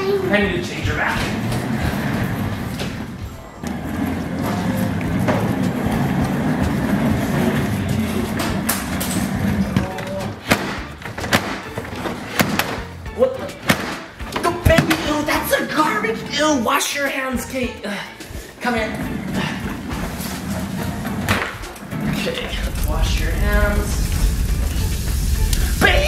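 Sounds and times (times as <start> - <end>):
baby walker wheels rolling on wood: 0.0 - 10.3, 18.6 - 26.0
music: 0.0 - 26.0.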